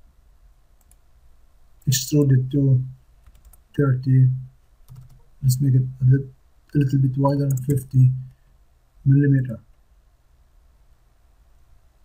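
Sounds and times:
low steady hum: 0.0s - 12.0s
computer mouse clicks: 0.8s - 1.0s, 3.2s - 3.6s, 4.9s - 5.3s, 7.4s - 7.9s
narrator speaking: 1.9s - 3.0s, 3.8s - 4.5s, 5.4s - 8.3s, 9.0s - 9.6s.

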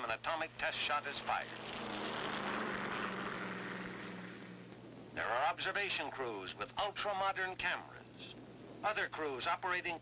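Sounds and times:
aircraft engine drone: 0.0s - 9.6s.

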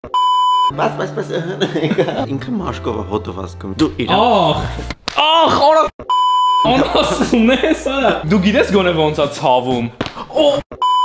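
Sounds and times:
electronic test tone beep: 0.1s - 0.7s, 6.1s - 6.7s, 10.8s - 11.0s.

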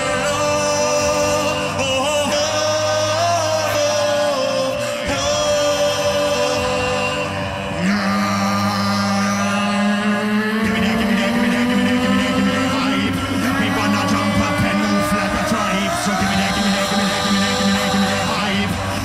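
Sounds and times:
looped vocal chords: 0.0s - 19.0s.

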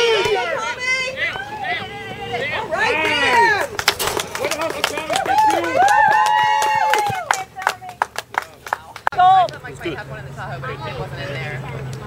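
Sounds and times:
spectators shouting and cheering: 0.0s - 11.9s.

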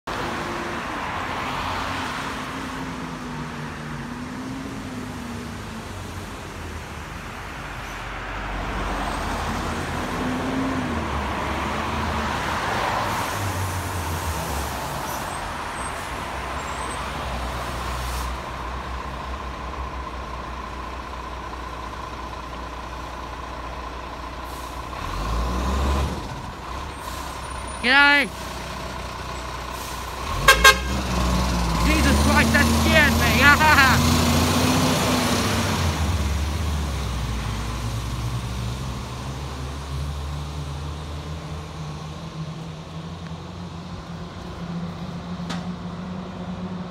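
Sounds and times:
diesel truck driving by: 0.1s - 46.9s
loud horn blast: 30.3s - 31.2s, 31.8s - 34.1s.

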